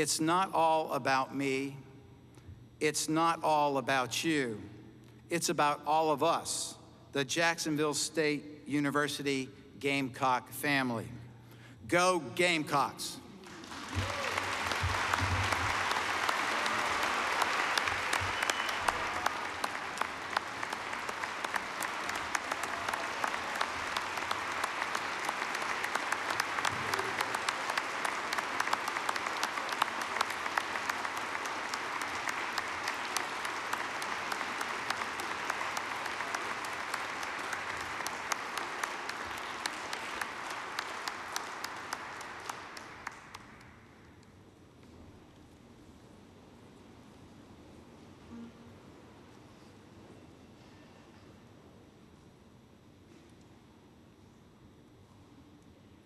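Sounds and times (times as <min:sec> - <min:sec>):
large audience applauding: 0:13.4 - 0:44.0.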